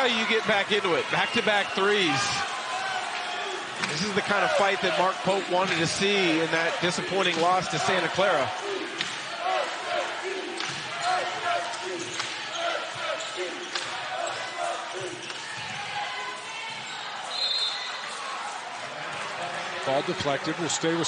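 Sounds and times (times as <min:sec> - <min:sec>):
crowd chatter: 0:00.0 - 0:21.0
referee's whistle: 0:17.2 - 0:18.0.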